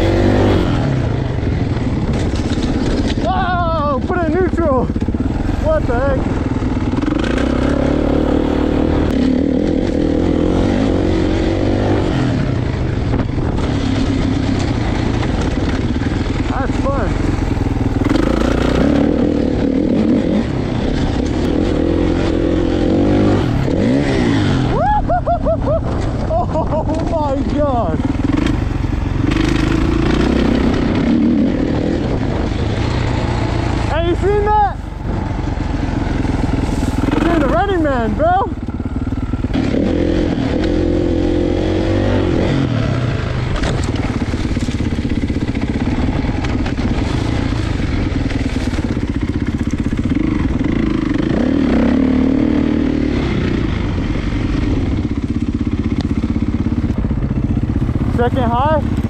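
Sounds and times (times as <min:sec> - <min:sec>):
wind noise: 0:00.0 - 0:55.3
dirt bike engine revving: 0:00.0 - 0:59.0.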